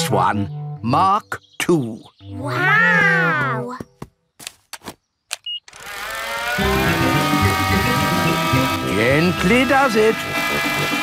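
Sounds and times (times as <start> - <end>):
toy propeller motor buzzing: 5.7 - 11.0.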